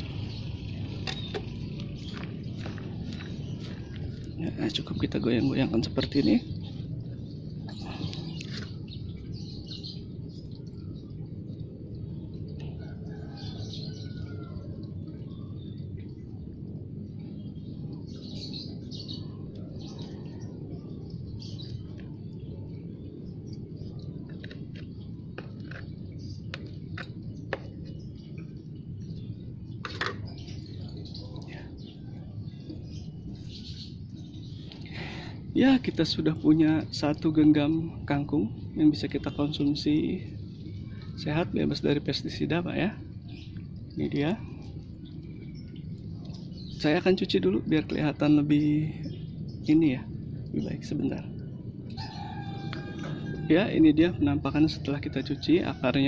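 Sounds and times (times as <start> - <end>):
soil rustling and crumbling: 0.0 - 10.9, 19.8 - 37.6
birds chirping: 0.0 - 56.0
steady low hum: 0.0 - 56.0.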